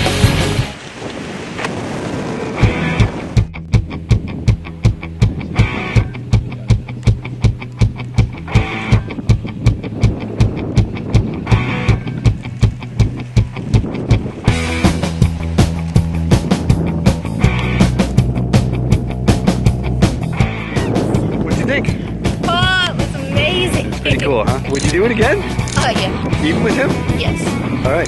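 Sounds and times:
steady beat: 2.6 - 27.8
loud dense background music: 14.4 - 28.0.

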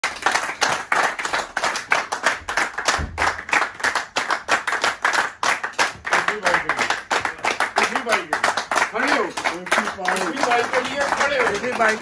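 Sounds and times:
people clapping in rhythm: 0.0 - 12.0.

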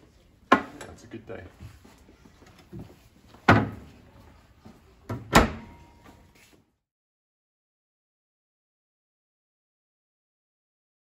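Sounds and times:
wooden cupboard door slamming: 3.5 - 3.8, 5.1 - 5.8.

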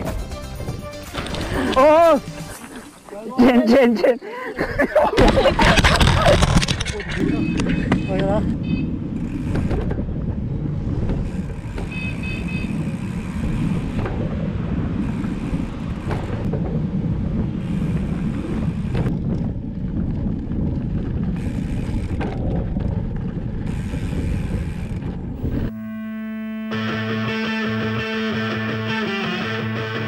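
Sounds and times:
bike knocks and rattles: 5.1 - 25.4
wind rumble on microphone: 5.2 - 25.7
electric guitar music: 25.4 - 30.0
high-pitched tone: 25.4 - 30.0.

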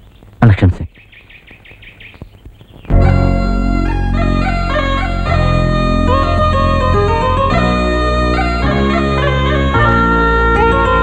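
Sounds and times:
bird chirping: 0.0 - 11.0
person speaking a word: 0.4 - 0.9
film song music: 2.9 - 11.0.

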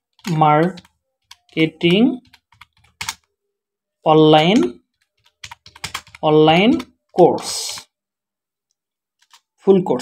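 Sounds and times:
computer keyboard typing: 0.0 - 3.3, 4.3 - 8.0, 9.2 - 9.5.

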